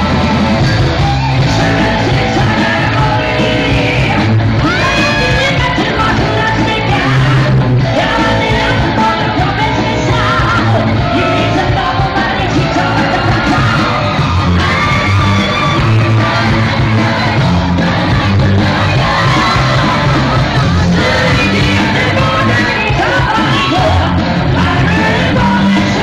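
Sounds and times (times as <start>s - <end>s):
rock band playing: 0.0s - 26.0s
man singing into a microphone: 1.5s - 14.0s, 20.9s - 26.0s.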